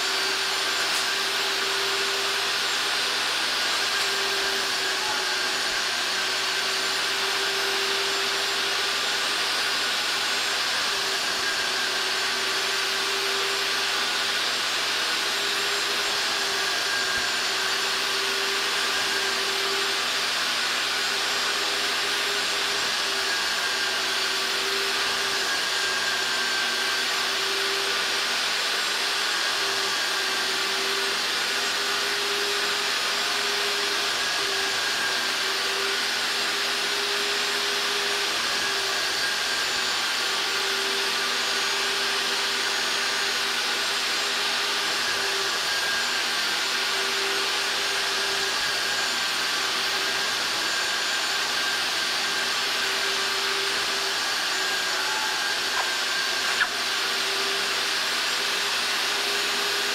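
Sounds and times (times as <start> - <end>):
carpet extractor suction: 0.0 - 59.9.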